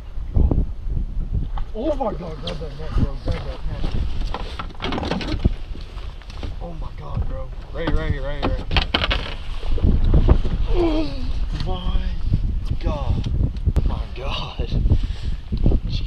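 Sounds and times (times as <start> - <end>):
wind buffeting microphone: 0.0 - 16.0
voices: 1.7 - 4.0, 6.4 - 8.8.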